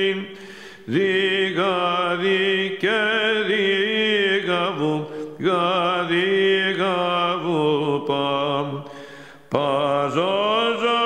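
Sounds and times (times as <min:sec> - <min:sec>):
man chanting: 0:00.0 - 0:08.9, 0:09.5 - 0:11.0.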